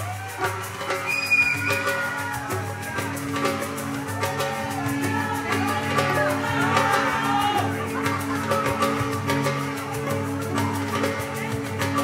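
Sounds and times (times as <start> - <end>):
drums: 0.0 - 12.0
violin playing lead line: 0.0 - 12.0.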